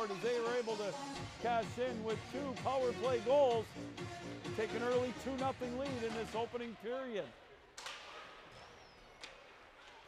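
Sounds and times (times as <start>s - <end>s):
ice rink ambience: 0.0s - 10.0s.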